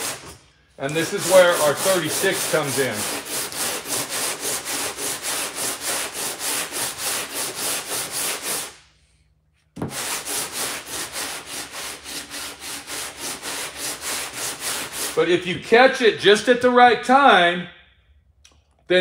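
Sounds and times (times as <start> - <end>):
sandpaper rubbing on body filler: 0.0 - 8.8, 9.8 - 15.4.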